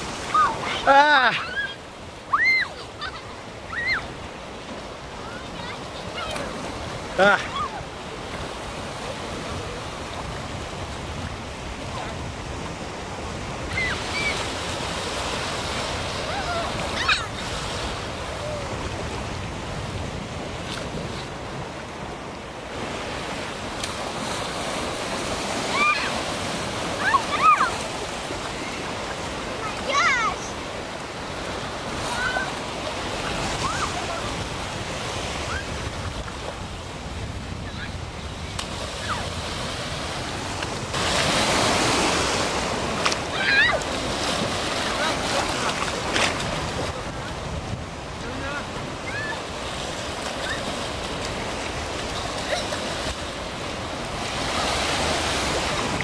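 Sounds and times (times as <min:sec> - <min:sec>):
ocean surf washing: 0:00.0 - 0:56.0
child's high-pitched cries: 0:00.4 - 0:04.1, 0:16.3 - 0:17.4, 0:25.7 - 0:26.2, 0:27.0 - 0:27.8, 0:43.3 - 0:43.8, 0:49.1 - 0:49.4
wind rumbling on microphone: 0:03.4 - 0:30.2, 0:30.8 - 0:56.0.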